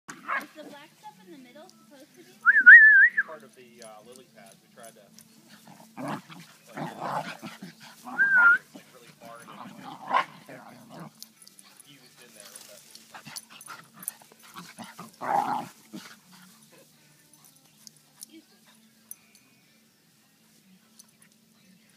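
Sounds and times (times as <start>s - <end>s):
wavering whistle: 2.5s - 3.3s, 8.1s - 8.7s
dogs vocalizing at play: 3.8s - 19.5s.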